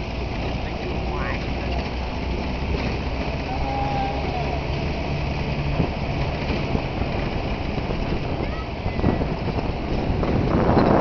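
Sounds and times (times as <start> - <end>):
road and body noise: 0.0 - 11.0
truck engine rumble: 0.0 - 11.0.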